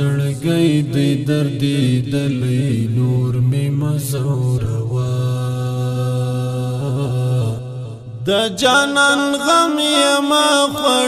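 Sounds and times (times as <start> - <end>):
man singing: 0.0 - 11.0.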